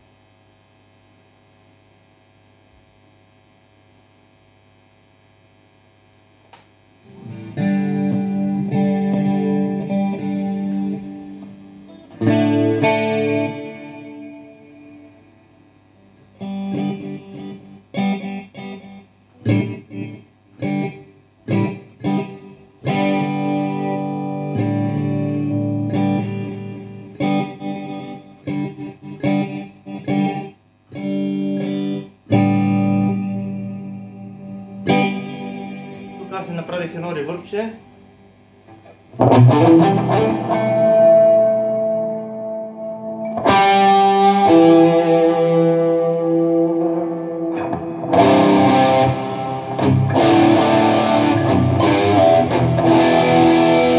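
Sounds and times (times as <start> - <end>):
amp hum: 0.0 - 53.9
distorted electric guitar chords: 0.0 - 53.9.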